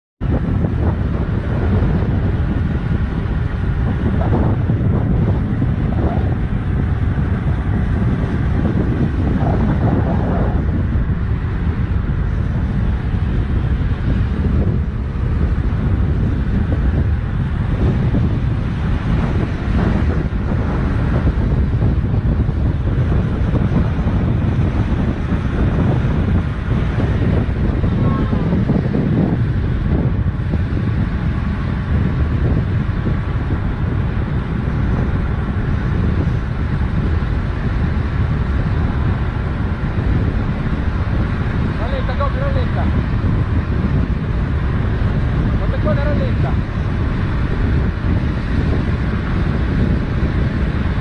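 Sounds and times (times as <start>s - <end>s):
wind buffeting microphone: 0.2s - 51.0s.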